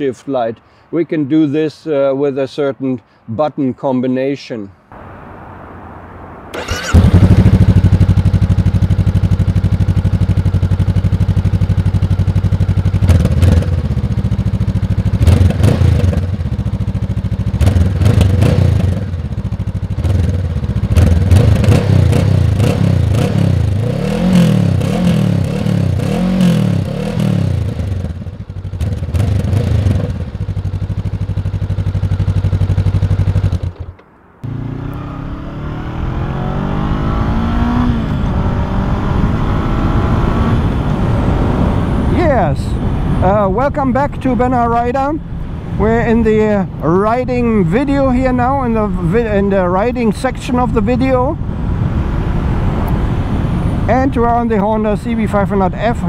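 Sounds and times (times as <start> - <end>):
motorcycle riding: 5.0 - 56.0
motorcycle engine revving: 6.5 - 44.3.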